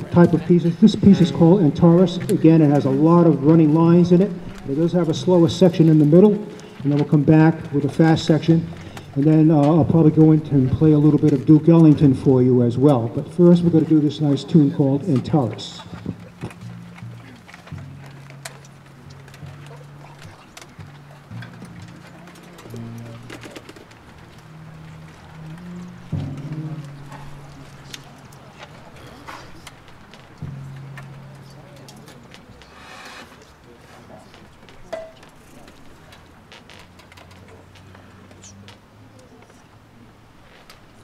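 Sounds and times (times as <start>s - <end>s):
low brass held notes: 12.1s - 29.3s.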